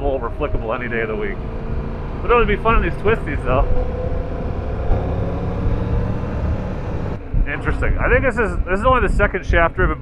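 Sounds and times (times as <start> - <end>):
motorcycle engine accelerating: 0.0 - 8.8
wind and road noise: 0.0 - 10.0.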